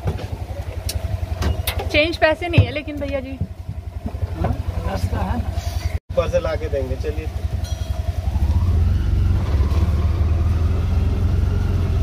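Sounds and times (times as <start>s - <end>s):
auto-rickshaw engine rumbling: 0.0s - 12.0s.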